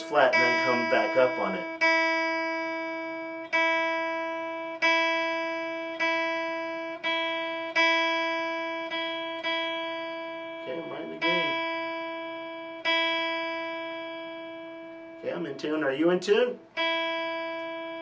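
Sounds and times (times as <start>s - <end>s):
electric guitar string plucked: 0.0s - 18.0s.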